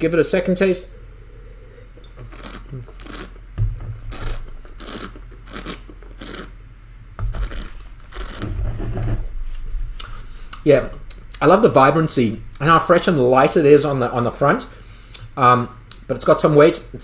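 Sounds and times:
rasping wine slurps: 0.9 - 3.5, 4.1 - 6.6.

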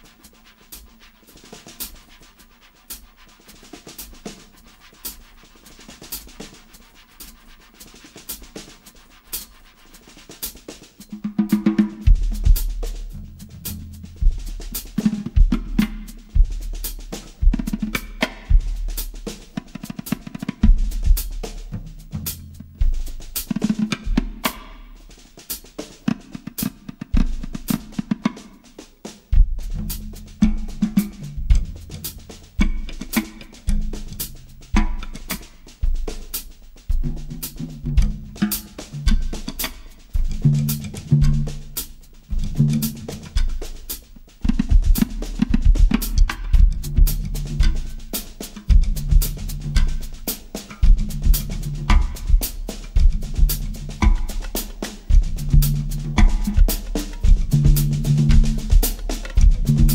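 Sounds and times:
drum kit groove: 0.0 - 59.9
soft taps on drums and cymbals: 0.0 - 59.9.

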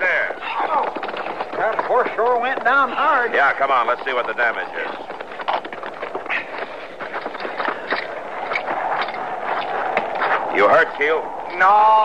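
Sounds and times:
squelching footsteps in mud: 0.4 - 10.6.

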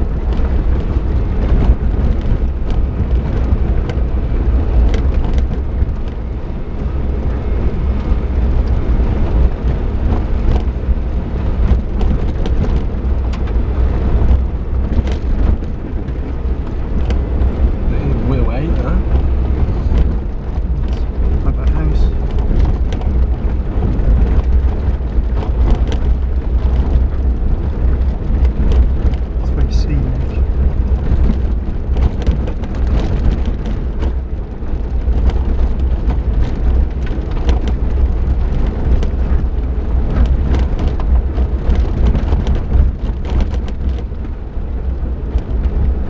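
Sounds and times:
engine and tyre rumble: 0.0 - 46.0
knocks and rattles from bumps: 7.0 - 46.0.

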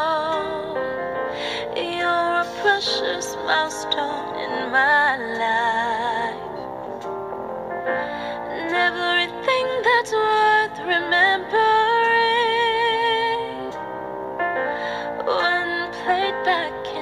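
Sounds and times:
woman singing a ballad: 0.0 - 6.7, 8.0 - 14.0, 14.6 - 17.0
musical accompaniment: 0.0 - 17.0.

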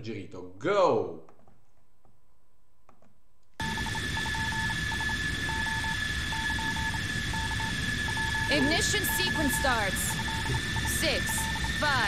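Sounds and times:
faint hum: 0.0 - 12.0
short beeps: 3.6 - 12.0
steady high whine: 3.6 - 12.0
radio static: 6.5 - 12.0.

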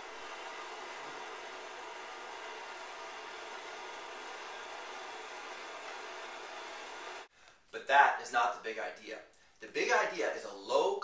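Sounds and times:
gas torch hissing: 0.0 - 7.3.

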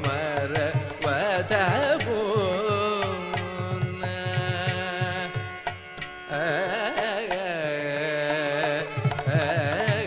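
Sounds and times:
man singing ornamented notes: 0.0 - 5.6, 6.3 - 10.0.

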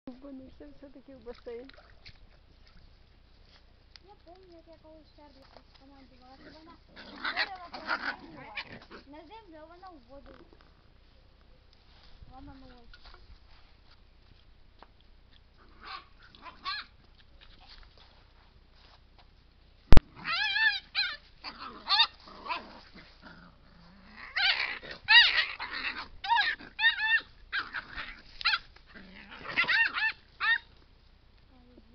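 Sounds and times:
faint low hum: 0.1 - 31.9.

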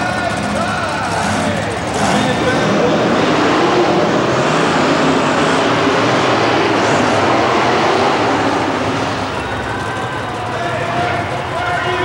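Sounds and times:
truck engines running loud: 0.0 - 12.0.

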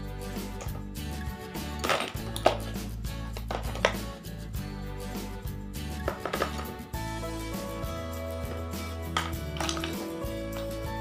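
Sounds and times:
background music with bass: 0.0 - 11.0
plastic baskets and bottles clattering: 1.8 - 2.8, 3.4 - 4.0, 6.1 - 6.8, 8.5 - 10.8.

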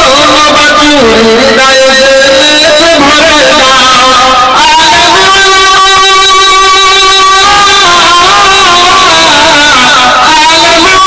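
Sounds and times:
man singing into microphone: 0.0 - 11.0.

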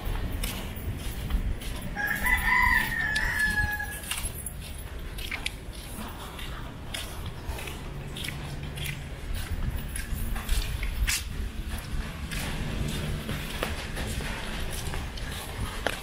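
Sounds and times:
footsteps on wet street: 0.0 - 16.0
wind rumble on microphone: 0.0 - 16.0
rooster crowing: 2.0 - 4.0.

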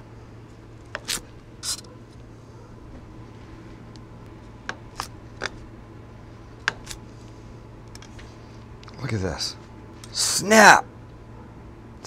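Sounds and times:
knife crunching through pizza crust: 0.9 - 1.8.

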